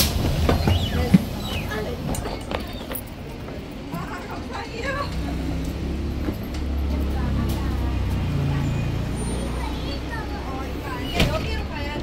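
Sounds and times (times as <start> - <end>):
electric bus humming: 0.0 - 12.0
people's voices: 0.0 - 12.0.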